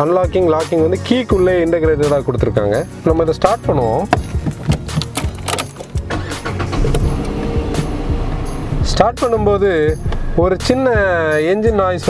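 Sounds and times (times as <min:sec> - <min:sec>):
car engine starting and idling: 0:04.1 - 0:08.8
ignition key clicks: 0:04.2 - 0:07.4.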